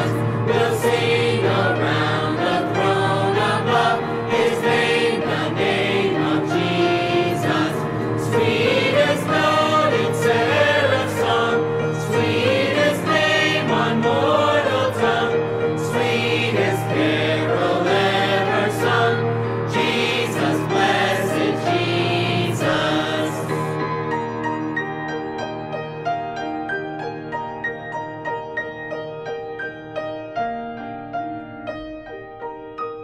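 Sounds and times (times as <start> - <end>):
choir singing long held notes: 0.0 - 23.8.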